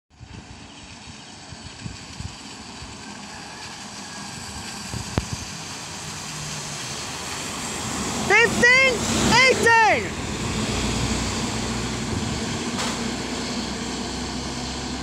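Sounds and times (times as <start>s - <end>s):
bus engine and road noise: 0.1s - 15.0s.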